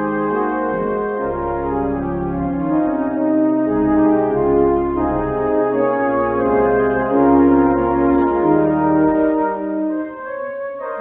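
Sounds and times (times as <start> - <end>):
church organ chords: 0.0 - 11.0.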